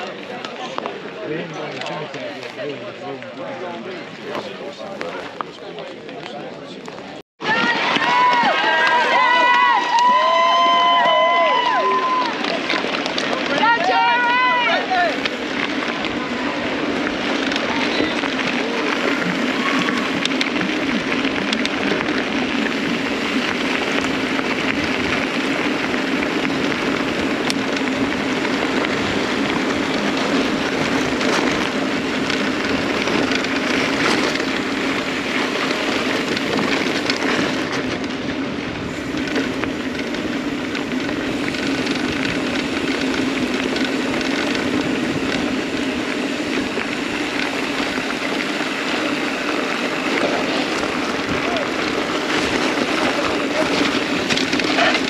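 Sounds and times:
bike tyres rolling on gravel: 0.0 - 55.0.

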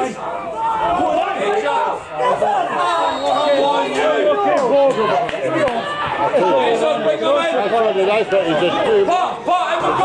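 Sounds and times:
men's voices chattering: 0.0 - 10.0.

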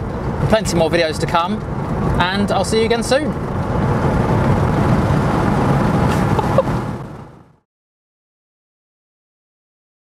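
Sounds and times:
road and tyre noise in car: 0.0 - 7.7.

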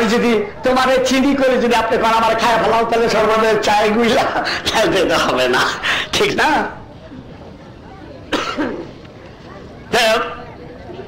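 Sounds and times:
short cough: 8.3 - 8.8.

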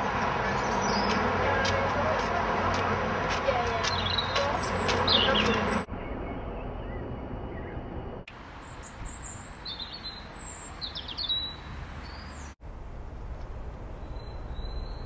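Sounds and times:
outdoor background noise: 0.0 - 15.0
songbirds chirping: 0.2 - 2.8, 3.5 - 12.6.

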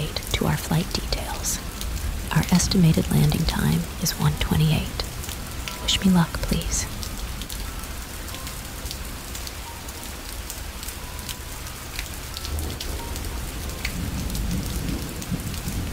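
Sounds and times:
rain patter: 0.0 - 15.9.

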